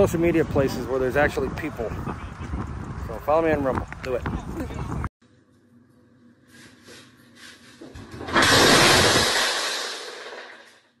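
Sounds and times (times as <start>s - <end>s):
glass fragments falling: 8.0s - 10.9s
glass tabletop shattering: 8.0s - 11.0s.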